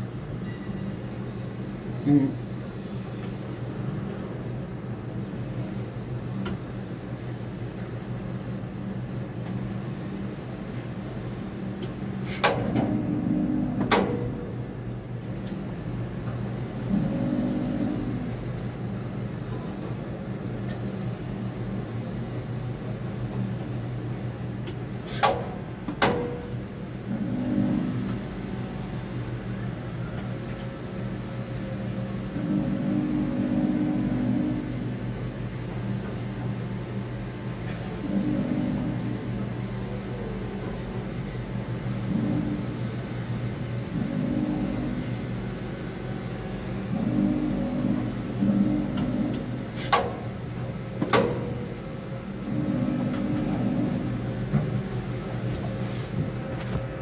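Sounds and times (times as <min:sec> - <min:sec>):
crane cab hum: 0:03.3 - 0:57.0
crane drive motors running up: 0:11.0 - 0:19.0, 0:24.8 - 0:57.0.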